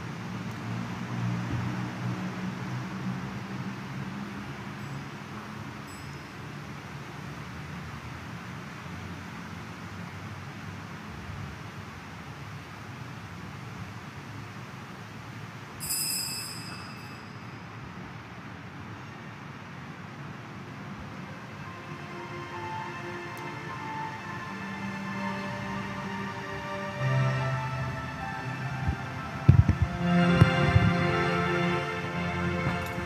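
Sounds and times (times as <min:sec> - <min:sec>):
low hum and hiss: 0:00.0 - 0:33.0
bright high-pitched ring: 0:05.8 - 0:06.6, 0:15.8 - 0:17.8.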